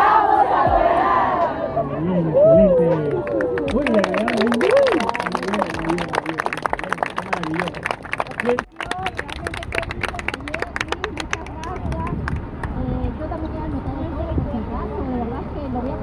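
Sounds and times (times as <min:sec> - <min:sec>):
people clapping: 0:02.8 - 0:12.8.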